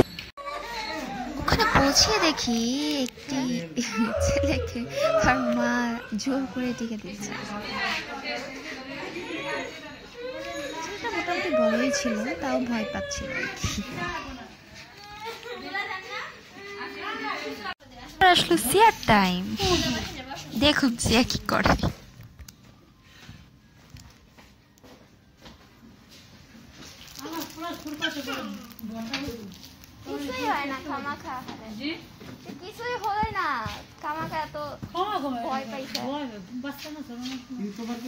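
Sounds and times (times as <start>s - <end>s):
young child's voice: 0.4s - 6.0s
children's voices: 0.4s - 17.8s, 30.0s - 31.6s
people talking: 1.2s - 14.5s, 17.3s - 22.0s.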